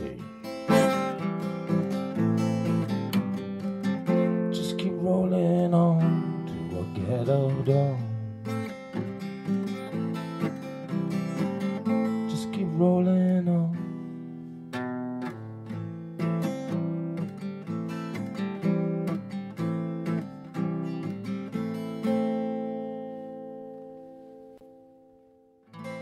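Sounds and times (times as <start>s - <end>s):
acoustic guitar picking and strumming: 0.0s - 26.0s.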